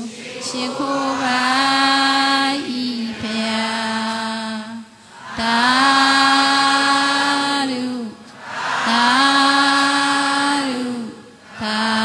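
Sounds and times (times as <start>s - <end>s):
devotional chanting in held notes: 0.0s - 12.0s.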